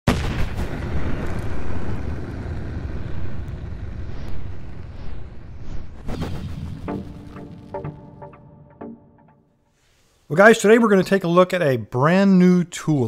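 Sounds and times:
cinematic boom: 0.1 - 9.4
long low rumble: 1.2 - 8.2
rising whoosh: 1.2 - 9.4.

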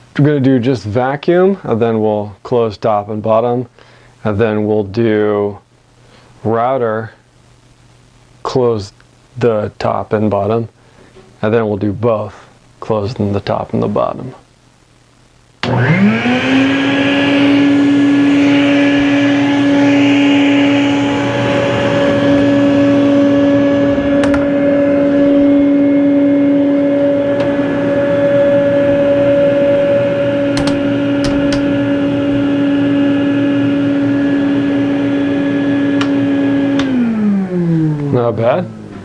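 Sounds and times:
shop vac whine: 0.0 - 39.0
vacuum motor winding down: 15.6 - 39.0.

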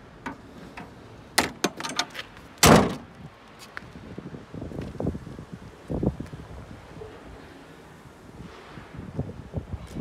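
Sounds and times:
car bonnet slamming shut: 1.4 - 3.1.

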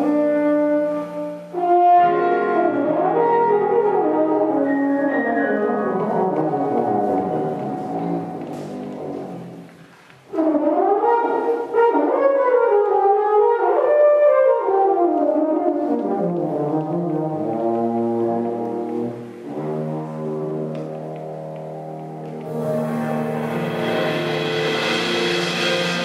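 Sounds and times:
french horn jazz solo: 0.0 - 9.7, 10.3 - 26.0
double bass: 0.0 - 26.0
piano: 0.0 - 26.0.

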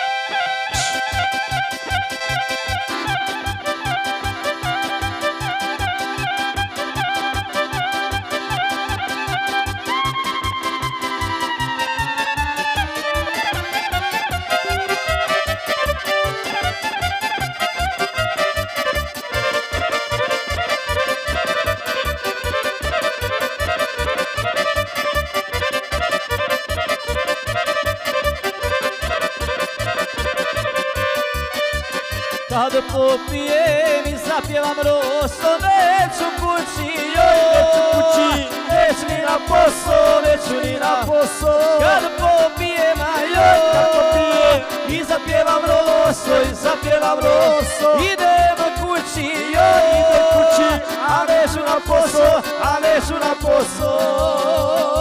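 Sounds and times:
electric violin melody: 0.0 - 55.0
keyboard accompaniment: 0.0 - 55.0
steady bass beat: 0.8 - 55.0.

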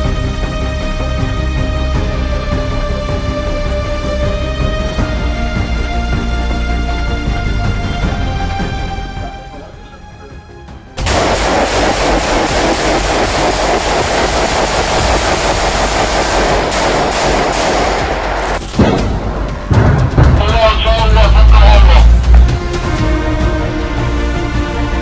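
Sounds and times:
automatic gunfire: 11.0 - 19.0
deep booming: 18.8 - 23.2.

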